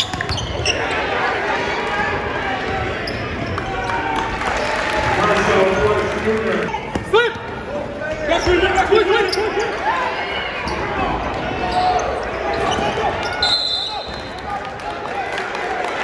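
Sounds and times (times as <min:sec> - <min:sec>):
sneakers squeaking on hardwood: 0:00.0 - 0:00.9
players and crowd shouting: 0:00.0 - 0:16.0
whistle blast: 0:13.3 - 0:14.3.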